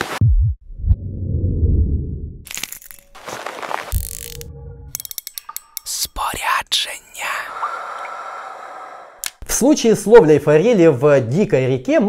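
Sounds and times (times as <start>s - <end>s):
low rumble: 0.2s - 2.5s, 4.0s - 5.0s.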